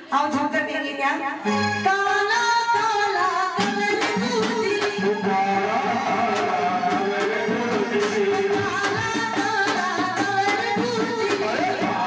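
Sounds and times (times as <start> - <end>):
woman singing into a microphone: 0.0 - 6.1, 8.3 - 12.0
instrumental accompaniment: 1.4 - 12.0
drum stroke: 3.6 - 12.0.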